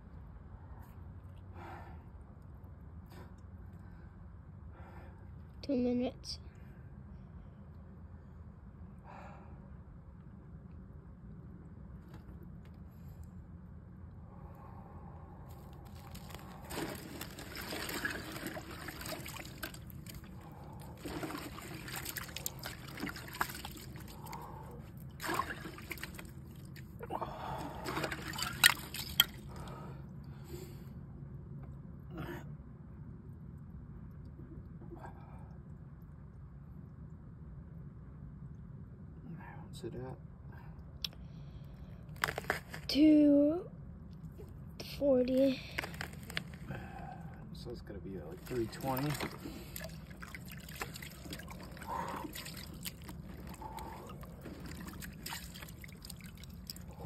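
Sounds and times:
water sloshing in bathtub: 15.6 - 29.7, 48.4 - 57.0
sharp water splashes: 15.9 - 27.0, 27.6 - 29.7, 48.4 - 57.0.

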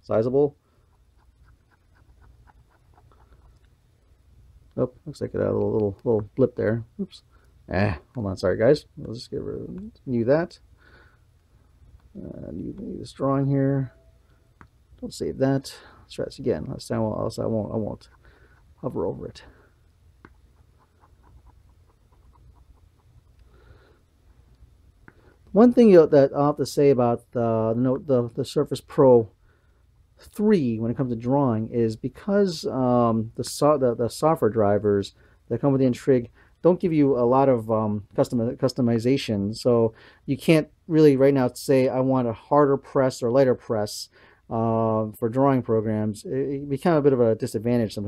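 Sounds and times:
soft rustle: 0.6 - 4.2.

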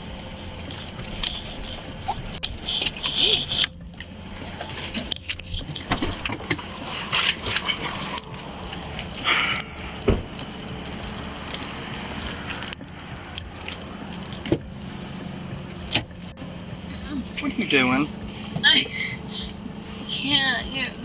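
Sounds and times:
camera rustling and scraping: 0.4 - 9.2
sharp thump: 10.0 - 10.3.

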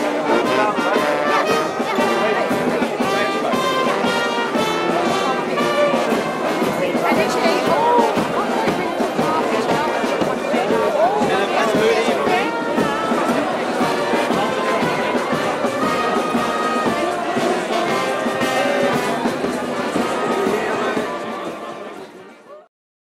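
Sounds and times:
brass band playing: 0.0 - 22.4
crowd talking: 0.0 - 22.7.

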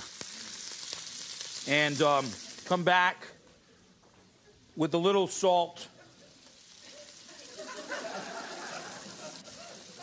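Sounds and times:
greens sizzling in a pan: 0.0 - 3.4, 4.3 - 10.0
studio audience voices: 5.9 - 10.0.

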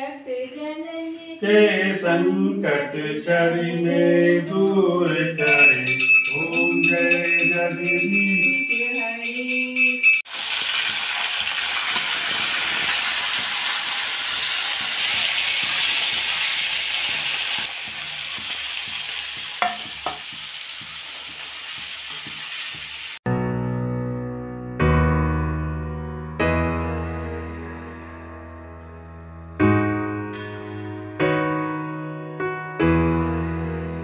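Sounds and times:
vegetables sizzling in a pan: 10.3 - 23.2.

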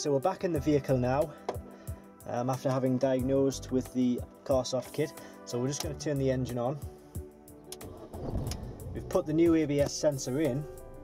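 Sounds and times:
background music: 0.0 - 11.0
ignition click: 7.7 - 8.7
car engine cranking and starting: 7.7 - 9.4.

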